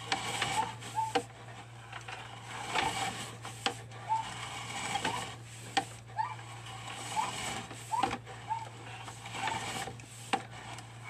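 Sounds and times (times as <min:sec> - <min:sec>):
low electrical hum: 0:00.0 - 0:11.0
short high squeaks: 0:00.4 - 0:01.3, 0:04.0 - 0:05.4, 0:06.2 - 0:09.7.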